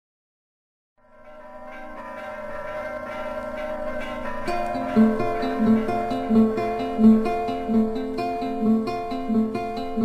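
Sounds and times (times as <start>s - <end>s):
bells ringing: 1.0s - 9.5s.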